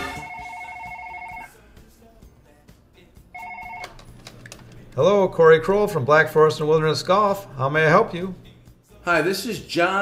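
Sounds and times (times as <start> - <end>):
telephone ringing: 0.0 - 1.6, 3.4 - 4.2.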